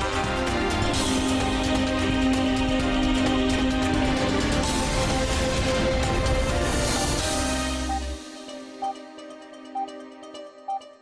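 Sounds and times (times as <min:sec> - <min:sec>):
electronic theme music chords: 0:00.0 - 0:11.0.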